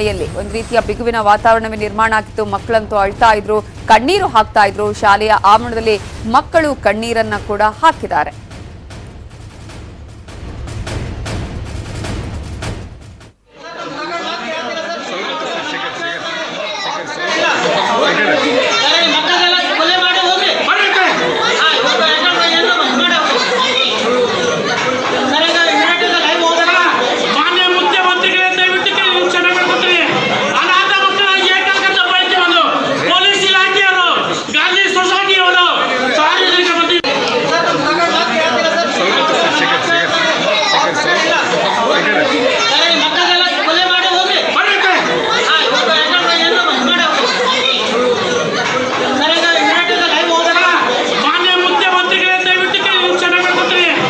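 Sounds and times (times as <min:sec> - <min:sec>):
many voices talking: 0:13.5 - 0:54.0.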